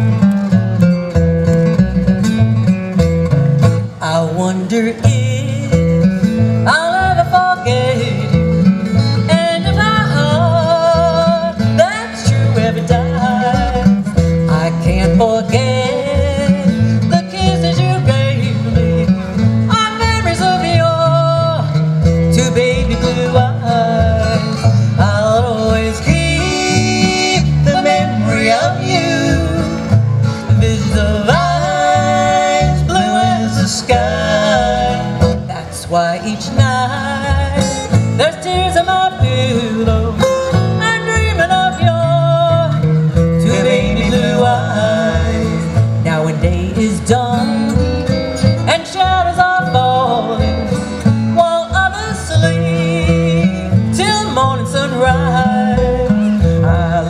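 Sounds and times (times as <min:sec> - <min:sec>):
acoustic guitar strummed and picked: 0:00.0 - 0:57.0
plucked upright bass: 0:00.0 - 0:57.0.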